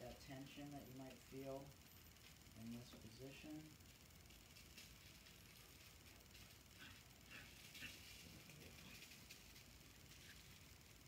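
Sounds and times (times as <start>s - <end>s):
faint small clicks and rustles: 0.0s - 11.0s.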